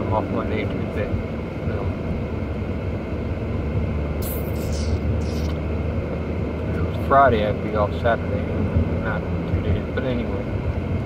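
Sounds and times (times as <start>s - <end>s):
car road and engine noise: 0.0s - 11.0s
brief high hisses: 4.2s - 5.5s.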